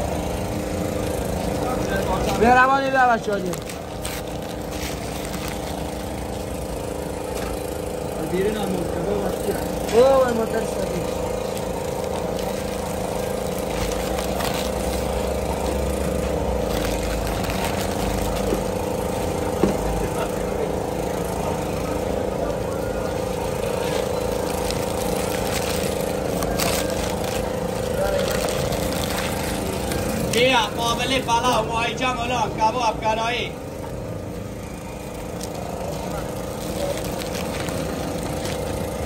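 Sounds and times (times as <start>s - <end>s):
motor humming: 0.0s - 31.6s.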